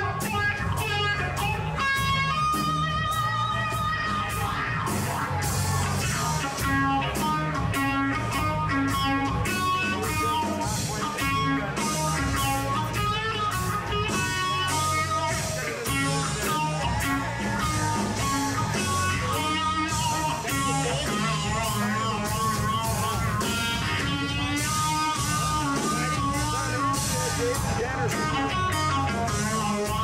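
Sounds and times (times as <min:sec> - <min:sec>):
electric guitar lead notes: 0:00.0 - 0:30.0
steady beat: 0:00.0 - 0:30.0.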